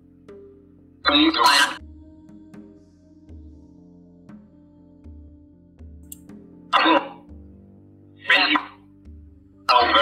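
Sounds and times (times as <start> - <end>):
soft ambient music: 0.0 - 10.0
raspy vocal-like noise burst: 1.1 - 1.8, 6.8 - 7.2, 8.3 - 8.8, 9.7 - 10.0.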